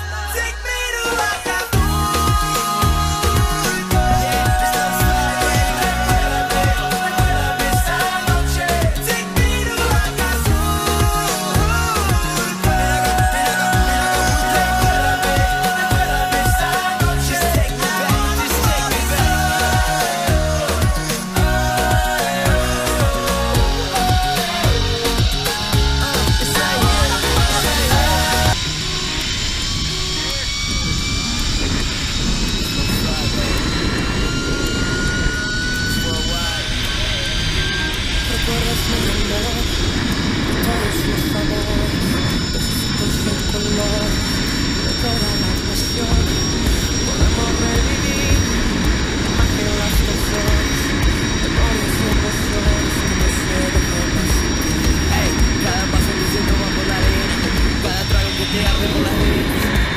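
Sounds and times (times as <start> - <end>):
zipline pulleys whining on cable: 0.4 - 59.9
wind rushing over microphone: 24.6 - 59.9.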